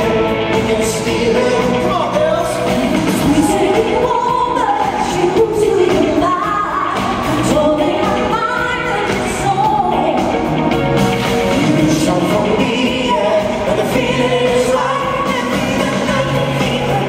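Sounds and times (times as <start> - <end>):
people singing into microphones: 0.0 - 10.6, 11.5 - 17.0
loud pop backing music: 0.0 - 17.0.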